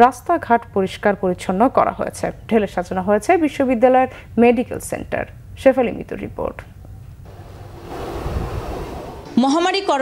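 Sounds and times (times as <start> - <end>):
wind noise on microphone: 7.3 - 9.8.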